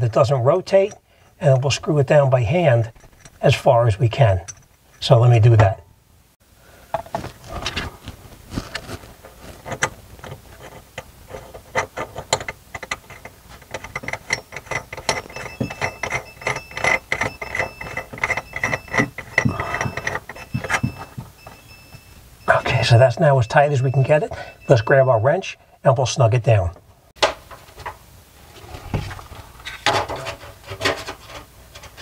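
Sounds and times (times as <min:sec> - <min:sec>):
metal nut scraping on threads: 0:00.2 - 0:05.1, 0:08.8 - 0:21.9
thin squeak: 0:13.1 - 0:22.9.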